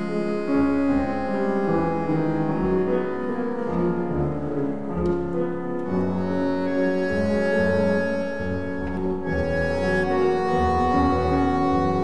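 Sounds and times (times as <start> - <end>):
bandoneon: 0.0 - 12.0
piano: 0.0 - 12.0
violin: 0.0 - 12.0
double bass notes: 5.0 - 12.0.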